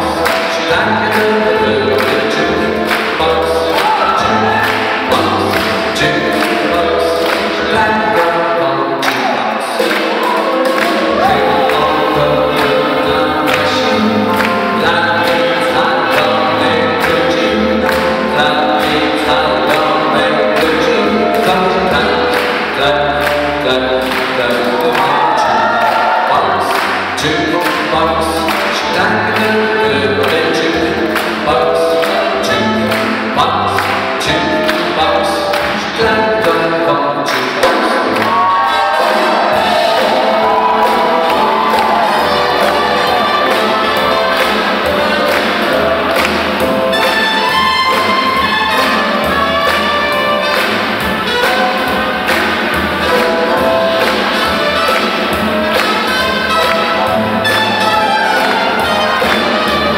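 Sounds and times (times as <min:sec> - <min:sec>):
big band playing swing music: 0:00.0 - 0:59.9
horn section holding chords: 0:00.0 - 0:59.9
drum and cymbal beat: 0:37.4 - 0:59.9.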